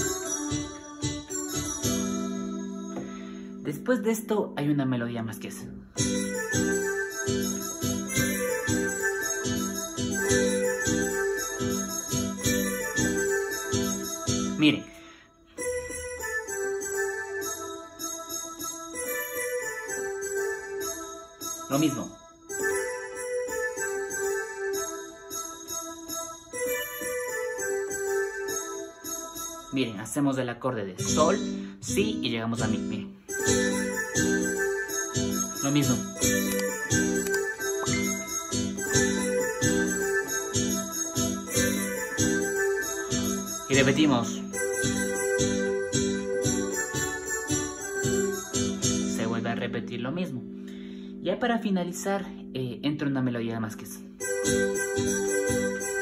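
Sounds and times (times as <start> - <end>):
electronic keyboard melody: 0.0 - 56.0.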